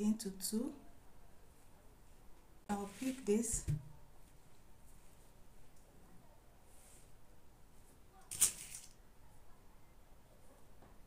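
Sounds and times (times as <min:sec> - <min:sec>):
fabric rustling: 0:02.7 - 0:03.5.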